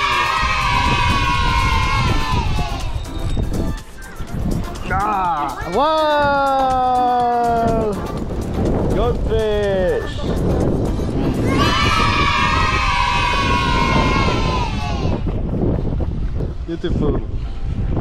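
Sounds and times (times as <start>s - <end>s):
wind buffeting microphone: 0.0s - 5.0s, 5.6s - 18.0s.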